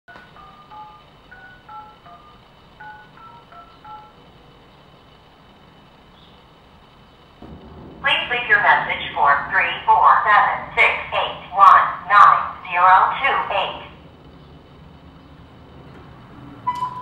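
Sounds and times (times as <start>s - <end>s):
touch-tone keypad beeps: 0.2s - 4.2s
low hum: 0.2s - 17.0s.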